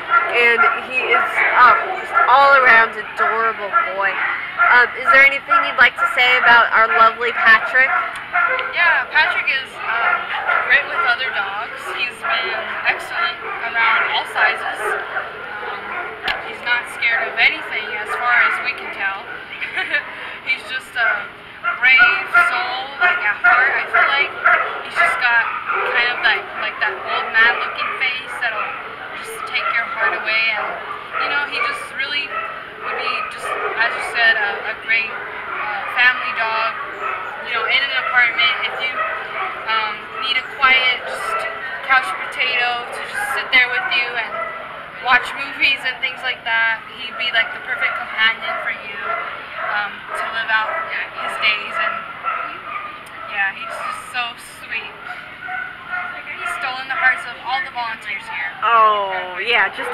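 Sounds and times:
dog yipping: 0:00.0 - 0:46.0, 0:47.1 - 0:58.8.

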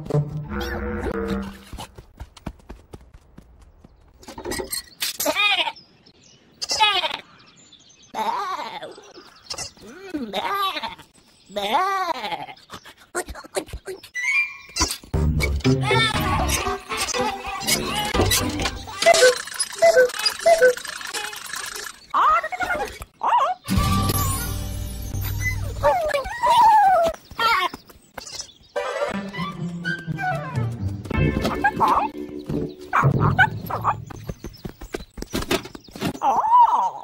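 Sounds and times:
background music: 0:15.2 - 0:18.9, 0:28.8 - 0:34.0
cartoon animal voices: 0:18.9 - 0:23.7.

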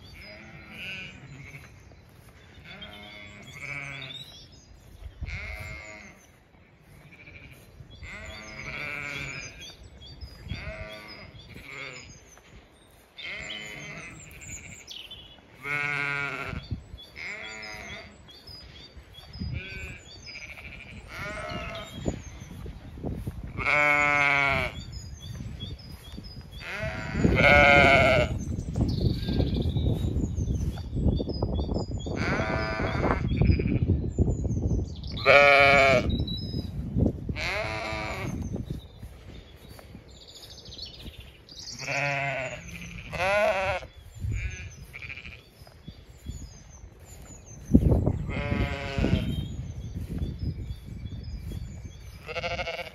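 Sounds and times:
sheep bleating: 0:00.0 - 0:01.7, 0:02.6 - 0:04.1, 0:05.2 - 0:09.7, 0:10.4 - 0:12.1, 0:13.2 - 0:14.9, 0:15.6 - 0:18.1, 0:19.5 - 0:22.0, 0:23.6 - 0:24.8, 0:26.6 - 0:28.4, 0:32.2 - 0:33.9, 0:35.2 - 0:36.1, 0:37.4 - 0:38.4, 0:41.7 - 0:45.5, 0:48.2 - 0:49.4, 0:52.2 - 0:52.9
birds chirping: 0:00.0 - 0:52.9.

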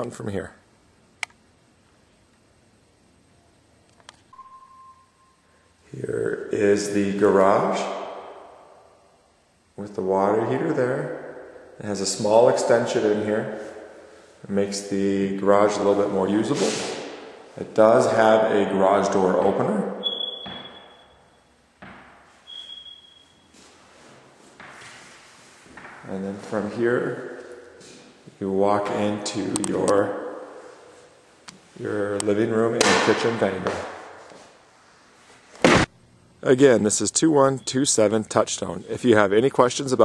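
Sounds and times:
faint high steady tone: 0:03.3 - 0:16.6, 0:17.5 - 0:21.6, 0:36.4 - 0:38.8
high electronic beep: 0:04.3 - 0:05.4, 0:20.0 - 0:21.4, 0:22.5 - 0:23.4
faint hiss: 0:08.5 - 0:19.2
thud: 0:35.6 - 0:35.9.

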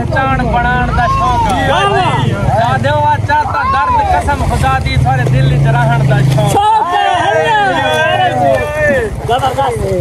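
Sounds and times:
men's voices: 0:00.0 - 0:10.0.

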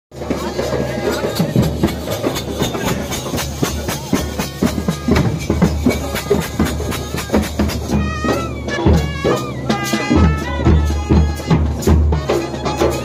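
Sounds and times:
rapid drumming: 0:00.1 - 0:13.0
trumpet: 0:00.2 - 0:13.0
clarinet: 0:07.3 - 0:13.0.

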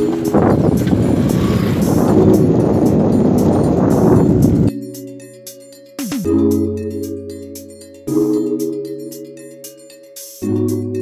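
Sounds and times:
rough rumbling on dirt track: 0:00.0 - 0:04.7
wind buffeting microphone: 0:00.0 - 0:04.7
background music: 0:00.0 - 0:11.0.

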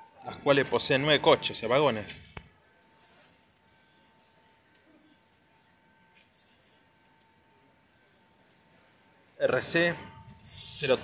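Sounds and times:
distant electric train whine: 0:02.7 - 0:11.0.

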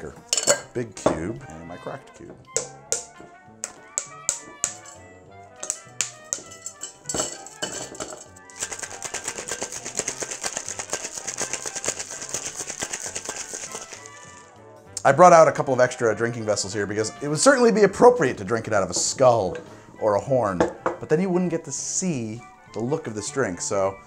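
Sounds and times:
background music: 0:00.0 - 0:24.0
ice clinking into metal shaker: 0:00.3 - 0:00.7, 0:03.0 - 0:05.0, 0:05.6 - 0:14.5
ice rattling in shaken shaker: 0:04.6 - 0:05.0, 0:05.6 - 0:14.5.

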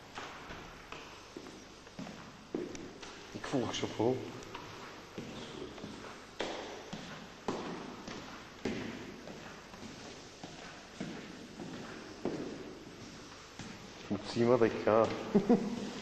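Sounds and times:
footsteps on hard tiled floor: 0:00.0 - 0:16.0.

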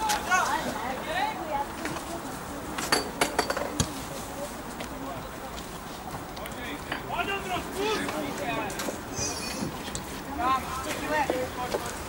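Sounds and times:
distant players shouting: 0:06.9 - 0:08.4.

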